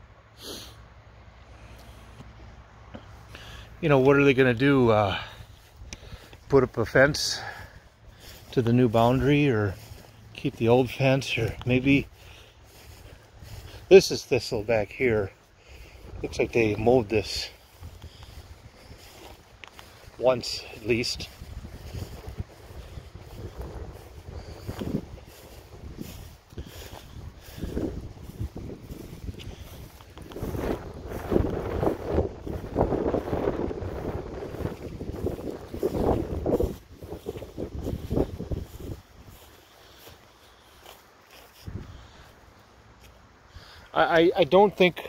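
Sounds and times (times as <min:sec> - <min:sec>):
rustling through long grass: 0:00.0 - 0:45.0
footsteps in long grass: 0:00.2 - 0:45.0
wind rumbling on microphone: 0:04.3 - 0:40.8, 0:41.6 - 0:42.3.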